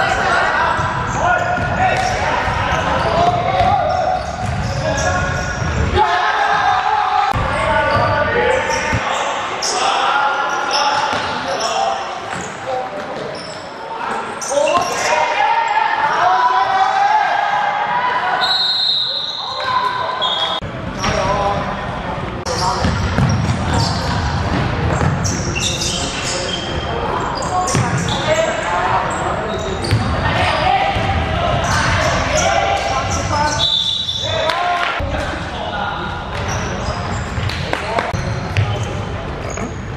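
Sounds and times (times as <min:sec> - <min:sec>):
players shouting: 0:00.0 - 0:12.0, 0:14.4 - 0:20.6, 0:25.8 - 0:35.1
basketball bouncing on wooden court: 0:22.8 - 0:23.7.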